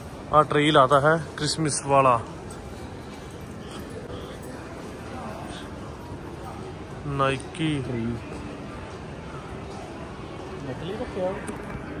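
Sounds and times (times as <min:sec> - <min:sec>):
shopping street ambience: 0:00.0 - 0:12.0.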